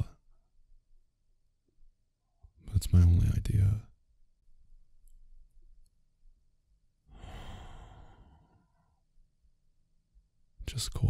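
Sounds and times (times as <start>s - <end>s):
man sighing: 7.2s - 8.5s.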